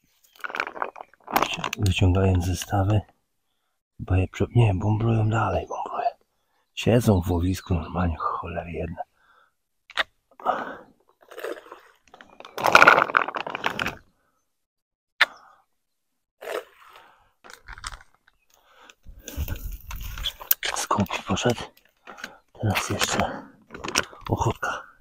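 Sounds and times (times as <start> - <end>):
crunching and rustling handling: 17.4 - 24.5.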